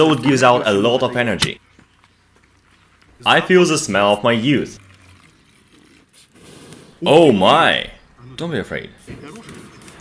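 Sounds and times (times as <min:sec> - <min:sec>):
liquid trickling into bottle: 0:04.4 - 0:06.4.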